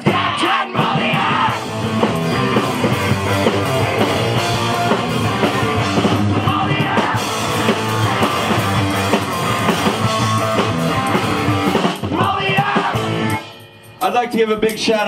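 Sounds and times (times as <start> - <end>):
punk rock band playing live: 0.0 - 14.2.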